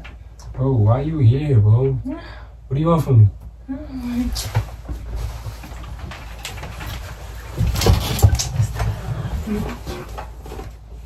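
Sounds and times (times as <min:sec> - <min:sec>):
steady low hum: 0:00.0 - 0:11.0
footsteps and small knocks: 0:03.4 - 0:11.0.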